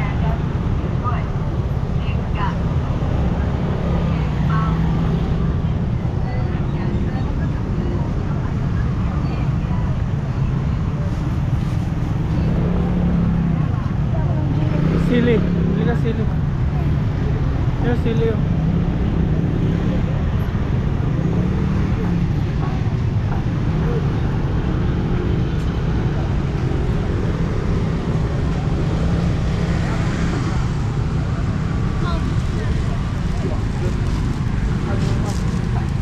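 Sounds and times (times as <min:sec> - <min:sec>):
road traffic rumble: 0:00.0 - 0:36.0
scooters passing: 0:18.4 - 0:36.0.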